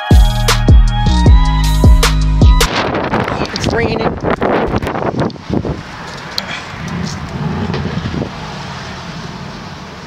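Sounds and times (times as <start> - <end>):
wind noise on microphone: 0.9 - 9.9
car engine idling: 1.5 - 10.0.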